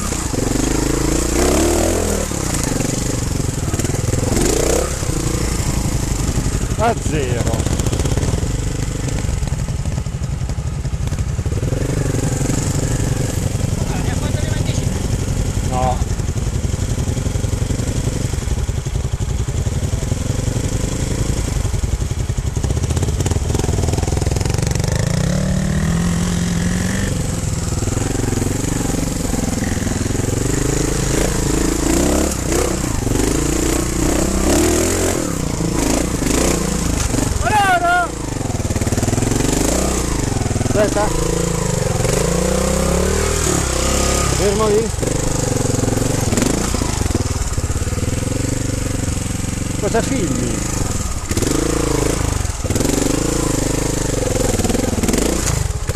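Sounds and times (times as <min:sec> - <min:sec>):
motorcycle engine revving: 0:00.0 - 0:55.9.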